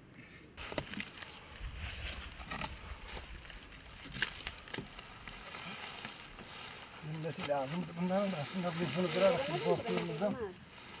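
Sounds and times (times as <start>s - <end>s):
dry straw crackling and rustling: 0.6s - 11.0s.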